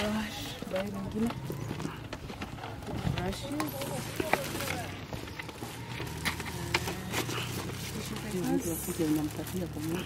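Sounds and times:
packs being handled: 0.1 - 10.0
people talking: 6.1 - 10.0.

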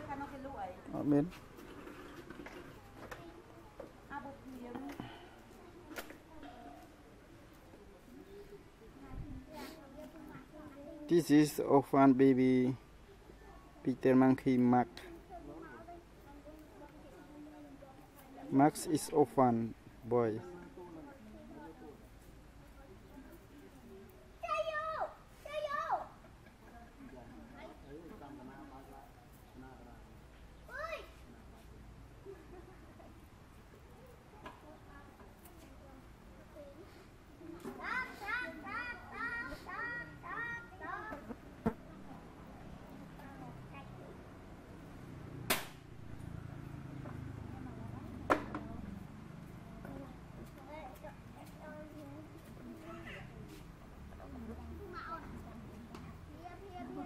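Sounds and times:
faint background voices: 0.0 - 11.1.

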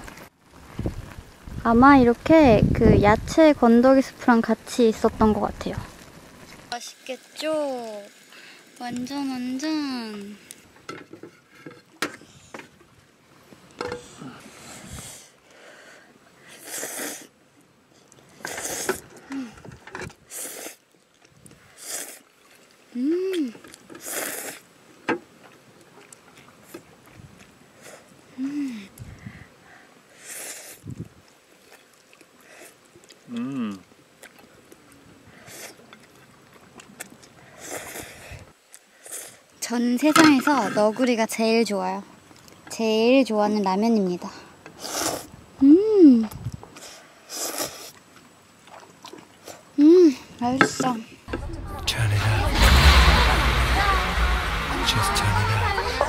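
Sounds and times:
slurping noodles: 16.5 - 17.3, 18.4 - 19.1, 20.3 - 20.8, 21.8 - 22.2, 24.0 - 24.6, 30.2 - 31.0, 37.0 - 38.4, 44.8 - 45.3, 46.8 - 48.0.

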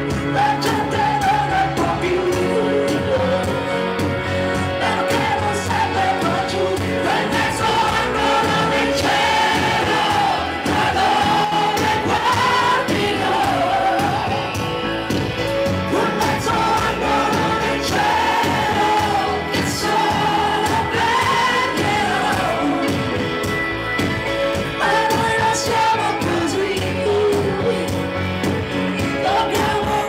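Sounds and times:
band with electric guitar: 0.0 - 30.0
woman singing into a microphone: 24.8 - 28.0, 29.0 - 30.0.

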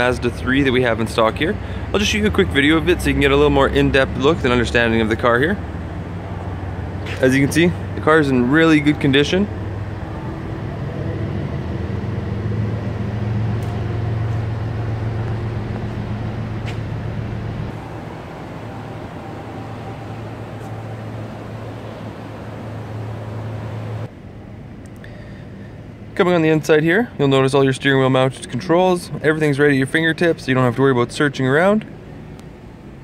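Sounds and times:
low hum of indoor garage: 0.0 - 33.0.

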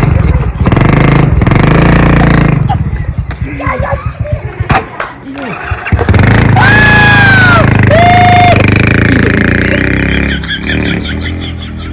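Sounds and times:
small motorcycle engine revving: 0.0 - 2.8, 5.3 - 11.9
long drawn-out shouts: 6.4 - 8.8.

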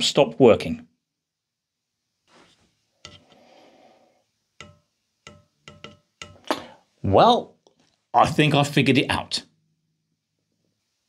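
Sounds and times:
soft rustle: 2.2 - 4.1
wooden knocks: 4.6 - 6.4.

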